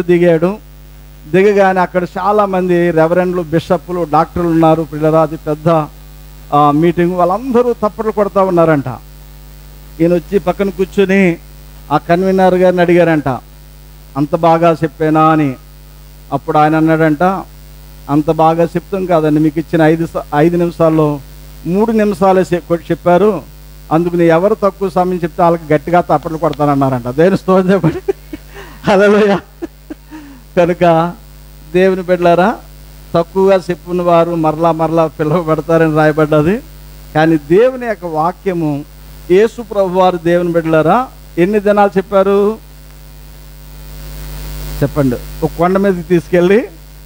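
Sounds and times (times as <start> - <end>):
man speaking: 0.0 - 0.6, 1.3 - 5.9, 6.5 - 9.0, 10.0 - 13.4, 14.2 - 15.6, 18.1 - 42.6, 44.8 - 46.8
low electrical hum: 0.0 - 47.0.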